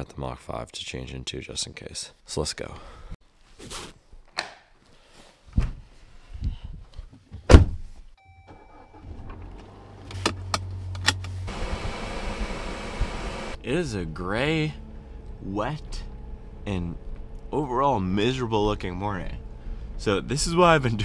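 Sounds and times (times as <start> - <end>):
car door shutting: 7.5 - 7.8
short electronic chime: 8.2 - 9.0
car engine starting and humming: 8.2 - 21.0
fan and road noise: 9.1 - 20.8.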